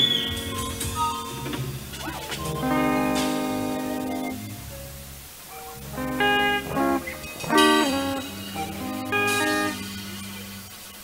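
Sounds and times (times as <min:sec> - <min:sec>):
drums: 0:00.0 - 0:04.6, 0:05.4 - 0:11.0
bass guitar: 0:00.0 - 0:10.7
electric guitar: 0:00.0 - 0:11.0
keyboard: 0:00.0 - 0:11.0.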